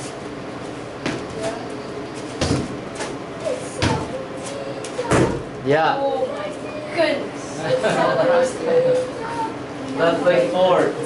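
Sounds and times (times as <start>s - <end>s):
thuds on matted floor: 1.0s - 1.4s, 2.4s - 3.2s, 3.8s - 4.1s, 5.1s - 5.5s.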